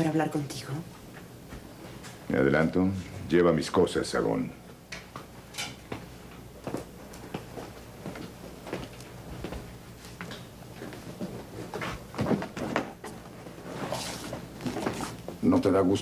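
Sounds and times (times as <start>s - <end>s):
steady low hum: 0.0s - 16.0s
footsteps: 1.0s - 2.3s, 5.1s - 15.6s.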